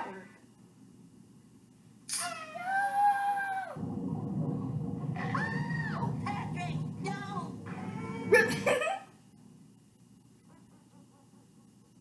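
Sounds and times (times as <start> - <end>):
steady low rumble: 3.7 - 10.5.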